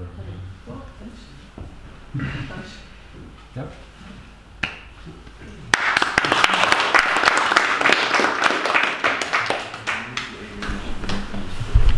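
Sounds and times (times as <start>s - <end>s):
audience applauding: 5.7s - 10.8s.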